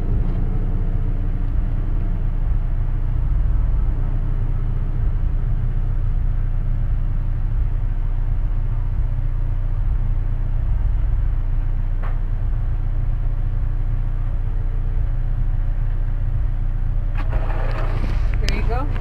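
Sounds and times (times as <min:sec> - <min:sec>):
car engine idling: 0:00.0 - 0:19.0.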